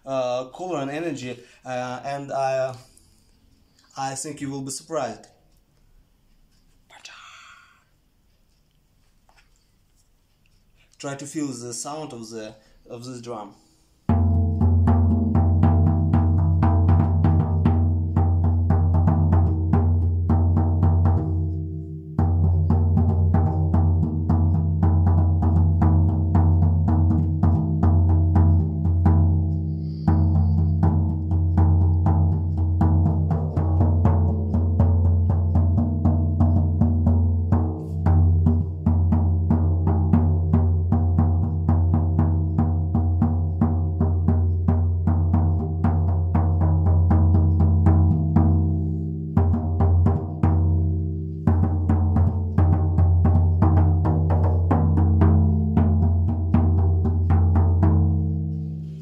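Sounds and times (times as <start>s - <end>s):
frame drum beating: 14.0s - 59.0s.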